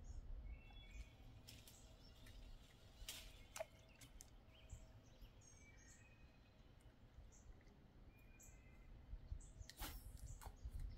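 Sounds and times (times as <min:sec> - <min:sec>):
faint bird chirps: 0:00.0 - 0:10.9.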